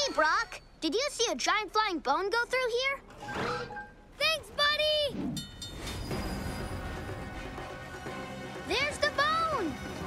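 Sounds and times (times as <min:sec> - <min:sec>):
background music: 0:03.1 - 0:10.0.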